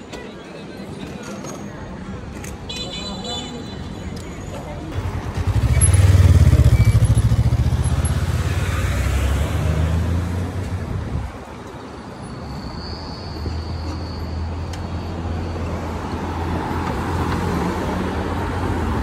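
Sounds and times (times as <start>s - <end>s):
vehicle engine passing by: 5.0s - 10.6s.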